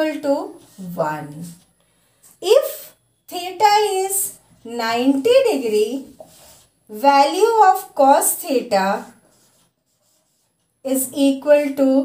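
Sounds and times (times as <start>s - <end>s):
woman talking: 0.0s - 1.6s, 2.4s - 6.2s, 6.9s - 9.2s, 10.9s - 12.0s
marker writing on whiteboard: 0.0s - 11.9s.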